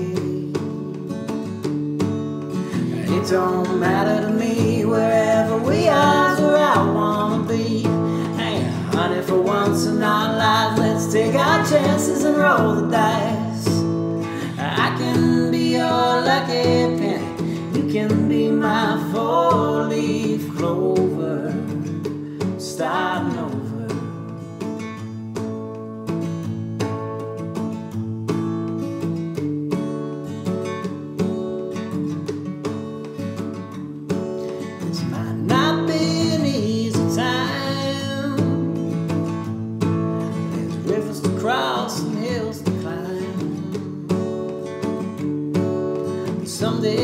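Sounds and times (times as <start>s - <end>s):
acoustic guitar strummed: 0.0s - 47.0s.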